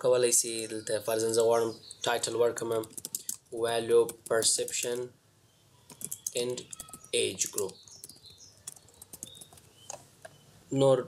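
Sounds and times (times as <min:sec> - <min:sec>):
person speaking: 0:00.0 - 0:05.2, 0:06.0 - 0:07.8
computer keyboard typing: 0:02.6 - 0:05.1, 0:05.9 - 0:10.0.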